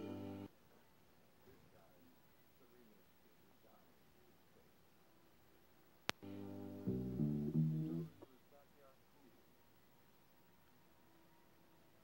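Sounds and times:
music from vinyl record: 0.0s - 0.5s, 6.1s - 8.4s.

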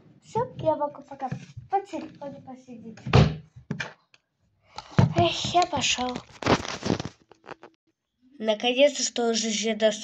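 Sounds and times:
boy speaking: 0.2s - 3.2s, 5.0s - 6.3s, 8.3s - 10.0s
phone being handled: 4.8s - 7.8s.

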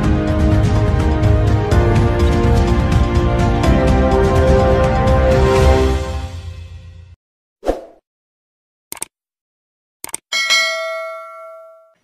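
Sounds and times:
notification bell ding: 10.3s - 12.0s.

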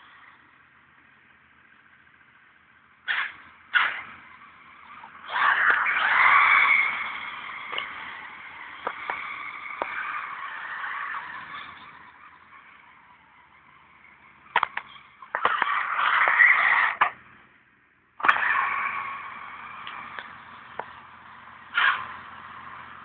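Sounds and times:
buggy motor noise: 0.0s - 23.0s.

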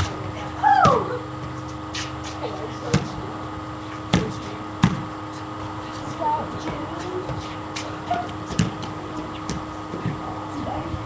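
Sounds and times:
steady electrical hum: 0.0s - 11.0s
small basketball knocking: 4.1s - 5.1s, 8.2s - 10.2s.

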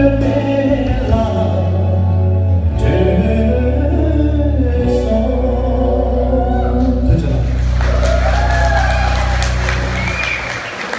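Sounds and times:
song holding low chord: 0.0s - 10.2s
audience cheering and clapping: 6.4s - 10.9s.

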